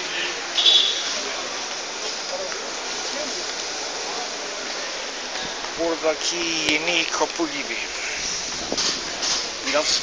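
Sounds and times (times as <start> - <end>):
steady rushing noise: 4.8 - 10.0.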